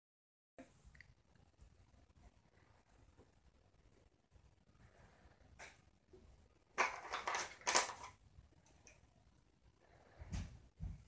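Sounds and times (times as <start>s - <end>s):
small wooden rods clattering: 6.8s - 9.0s.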